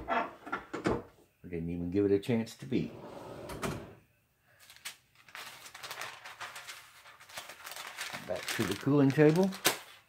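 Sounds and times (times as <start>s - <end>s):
metallic scrape of sliding platen: 2.9s - 3.9s
paper sheet rustling: 4.6s - 10.0s.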